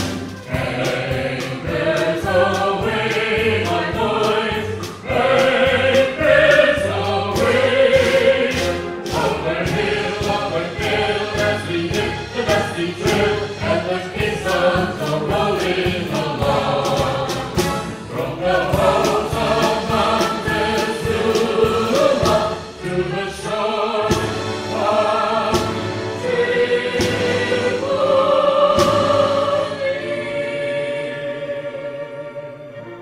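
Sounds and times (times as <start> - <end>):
percussion strokes: 0.0 - 30.5
orchestra playing: 0.0 - 33.0
piano: 0.0 - 33.0
singers in harmony: 0.0 - 33.0.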